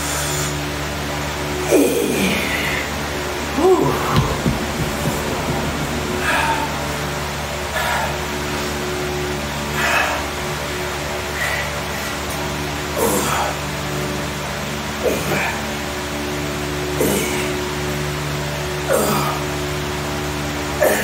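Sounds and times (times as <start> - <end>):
man breathing and grunting: 0.0 - 14.0
steady hum: 0.0 - 21.0.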